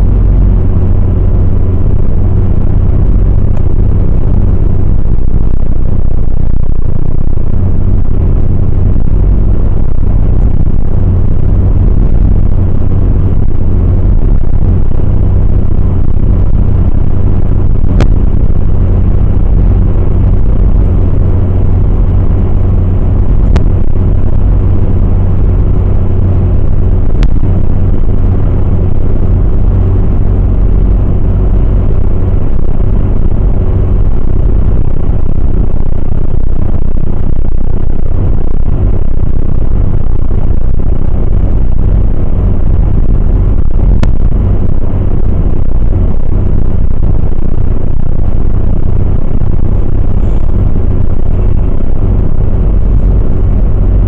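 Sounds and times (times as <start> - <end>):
car driving at motorway speed: 0.0 - 54.0
faint steady hum: 0.0 - 54.0.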